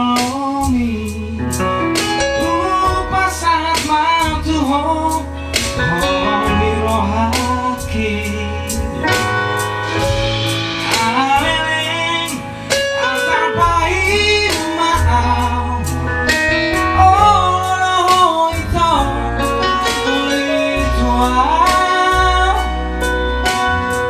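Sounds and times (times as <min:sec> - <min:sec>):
acoustic guitar: 0:00.0 - 0:24.0
bass guitar: 0:00.0 - 0:24.0
drum kit beat: 0:00.0 - 0:24.0
electric keyboard: 0:00.0 - 0:24.0
lead vocal singing: 0:02.4 - 0:23.0.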